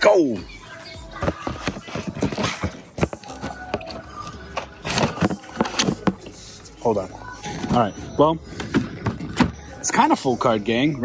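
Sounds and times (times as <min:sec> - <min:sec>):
faint background music: 0:00.0 - 0:11.0
clattering knocks of merchandise: 0:01.2 - 0:03.8, 0:04.8 - 0:06.3.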